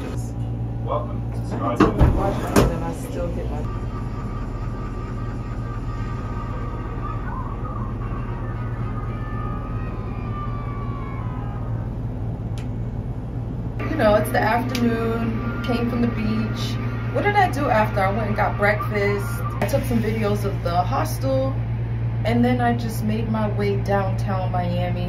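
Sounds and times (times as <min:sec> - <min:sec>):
low mechanical hum: 0:00.0 - 0:25.0.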